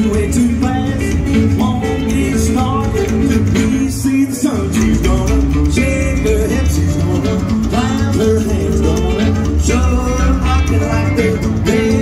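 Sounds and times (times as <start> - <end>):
rockabilly band playing: 0.0 - 12.0.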